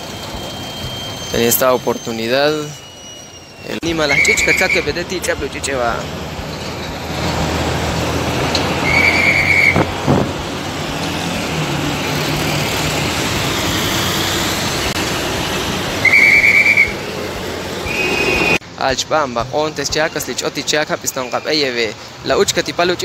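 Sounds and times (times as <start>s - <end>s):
whistle blasts: 0.0s - 6.0s, 8.7s - 10.0s, 13.1s - 18.6s, 21.1s - 21.8s
heavy truck engines running: 0.0s - 23.0s.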